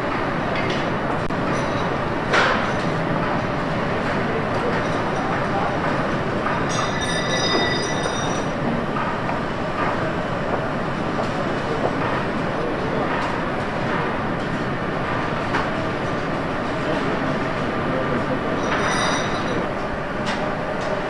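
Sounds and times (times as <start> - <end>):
factory machinery din: 0.0 - 21.0.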